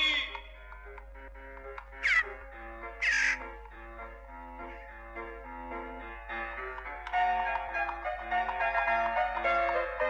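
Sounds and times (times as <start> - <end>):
soft instrumental music: 0.0 - 10.0
cartoon magpie squawks: 2.0 - 2.4, 3.0 - 3.4.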